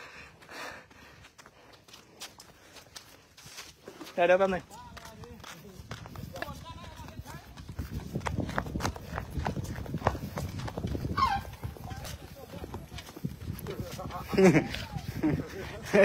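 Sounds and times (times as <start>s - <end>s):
footsteps on dirt road: 0.0s - 16.0s
voices: 11.0s - 16.0s.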